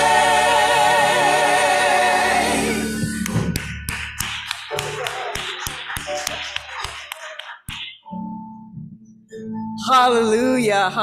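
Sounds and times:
scattered clapping: 3.3 - 8.0.

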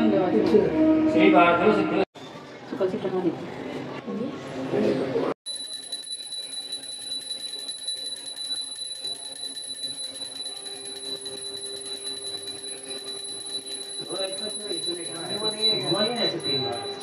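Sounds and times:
brass hand bell ringing rapidly: 5.5 - 17.0.

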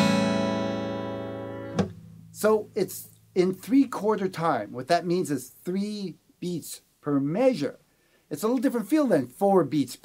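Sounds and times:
acoustic guitar chord ringing: 0.0 - 2.7
guitar strings muted click: 1.7 - 2.2.

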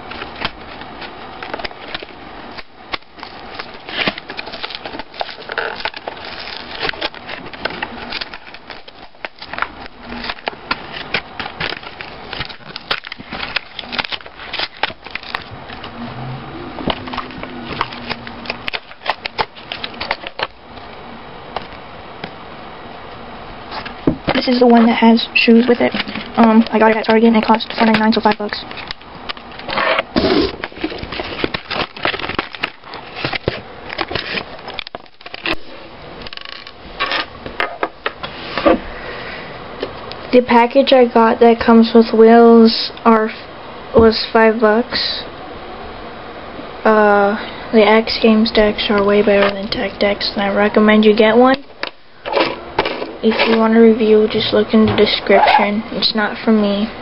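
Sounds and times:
plastic packaging crackling: 0.0 - 16.0, 16.8 - 20.9, 23.7 - 37.5.

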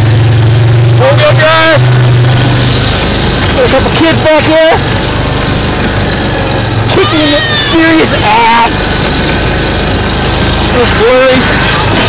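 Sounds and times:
driving noise rush: 0.0 - 12.0
golf cart engine running: 0.0 - 12.0.

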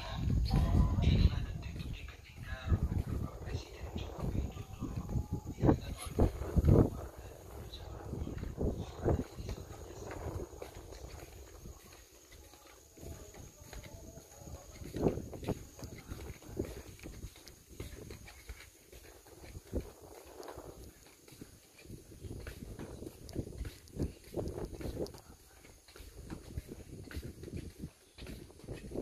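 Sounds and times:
footsteps on tiles: 0.0 - 29.0.

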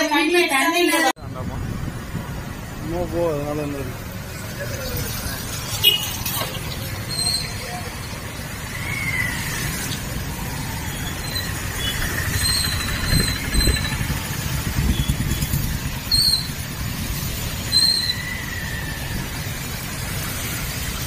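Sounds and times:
motorcycle engine rumble: 1.2 - 21.0
high-pitched squeaks: 6.0 - 7.9, 11.0 - 14.1.

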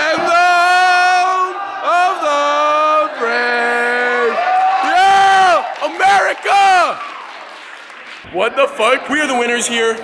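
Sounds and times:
teenagers cheering: 0.0 - 7.6.

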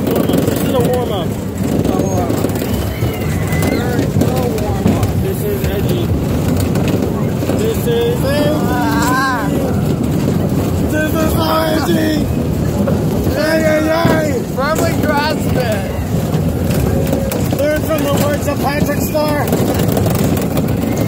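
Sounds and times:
ride rumble: 0.0 - 21.0
wind buffeting microphone: 0.0 - 21.0
riders whooping and laughing: 1.9 - 4.8, 7.7 - 21.0.

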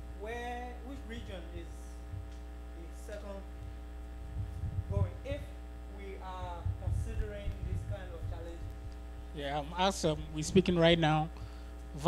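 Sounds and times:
electrical mains hum: 0.0 - 12.0
low bumps: 4.1 - 5.4, 6.3 - 9.3.

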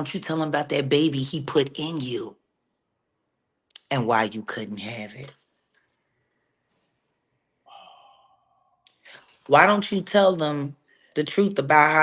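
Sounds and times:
breathy exhale: 7.7 - 9.4.

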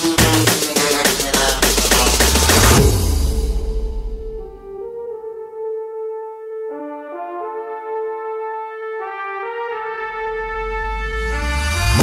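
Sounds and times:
sustained brass chords: 0.0 - 12.0.

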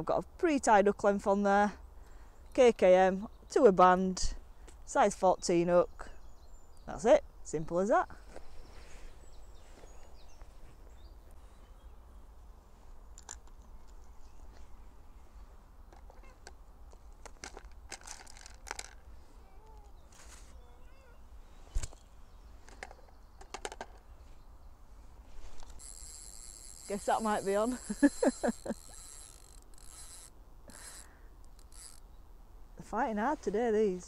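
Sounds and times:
faint bird chirps: 19.4 - 24.8.

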